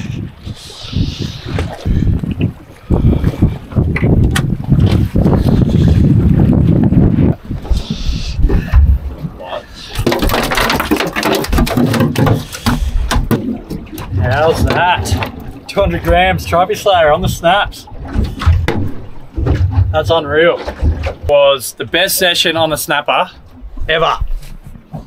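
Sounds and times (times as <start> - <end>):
wind buffeting microphone: 0.0 - 22.8, 23.4 - 25.0
fish flapping on metal deck: 9.9 - 15.5.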